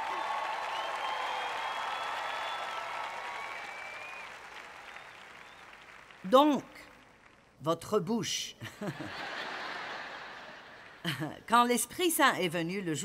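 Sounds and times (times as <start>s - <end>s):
audience applauding: 0.0s - 7.6s.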